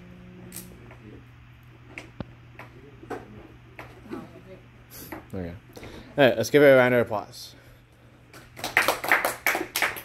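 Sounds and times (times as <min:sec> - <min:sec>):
people clapping: 0:08.3 - 0:10.0.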